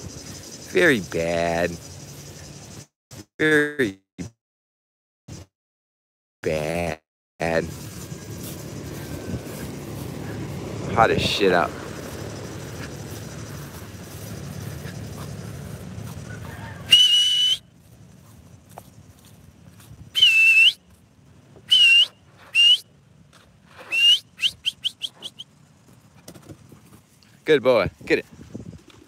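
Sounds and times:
person whistling: 16.9s - 17.6s, 20.2s - 20.8s, 21.7s - 22.9s, 23.8s - 25.4s.

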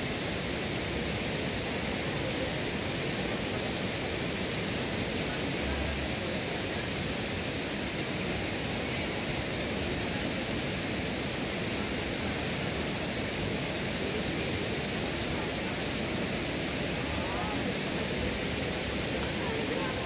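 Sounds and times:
stream water rushing: 0.0s - 20.0s.

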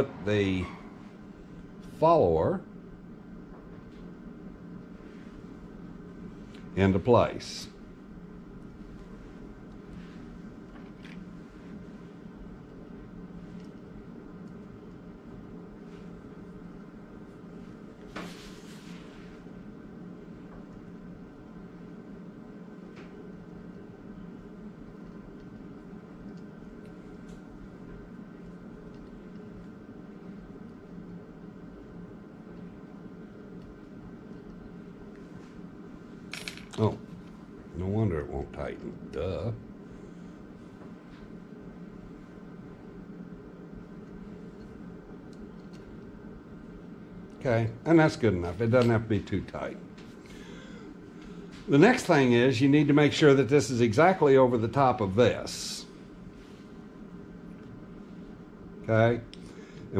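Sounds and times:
low hum: 0.0s - 59.9s.

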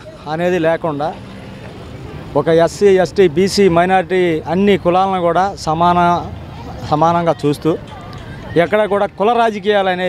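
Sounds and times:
faint street background noise: 0.0s - 10.0s
man speaking into a microphone: 2.3s - 7.8s, 8.6s - 10.0s.

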